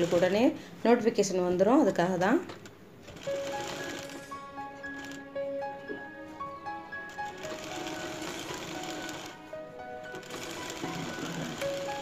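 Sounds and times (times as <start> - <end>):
sewing machine running: 0.0 - 0.4, 3.1 - 4.3, 4.9 - 5.2, 7.1 - 9.4, 10.1 - 12.0
background music: 0.0 - 0.5, 2.8 - 12.0.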